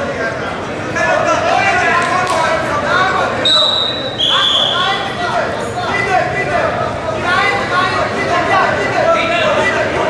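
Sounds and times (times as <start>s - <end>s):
voices shouting in a hall: 0.0s - 10.0s
referee's whistle blasts: 3.4s - 4.9s.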